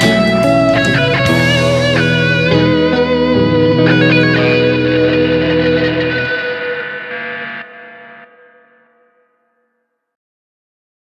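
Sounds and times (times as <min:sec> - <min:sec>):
low bass notes: 0:00.0 - 0:07.4
electric guitar blues ballad: 0:00.0 - 0:08.6.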